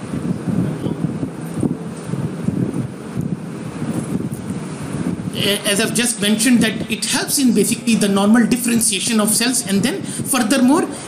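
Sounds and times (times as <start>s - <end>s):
rumbling noise on microphone: 0.0s - 11.0s.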